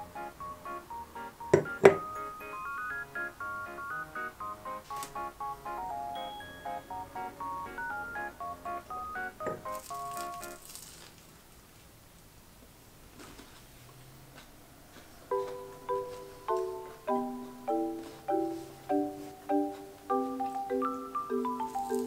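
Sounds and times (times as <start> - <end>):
music of short chiming notes: 1.5 - 4.6, 5.2 - 10.6, 15.3 - 22.0
crunching of toast being bitten: 9.7 - 11.3.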